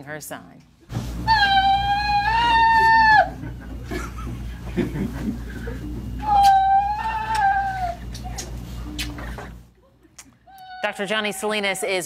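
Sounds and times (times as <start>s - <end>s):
woman wailing cry: 1.3s - 3.5s, 6.2s - 8.0s, 10.5s - 11.8s.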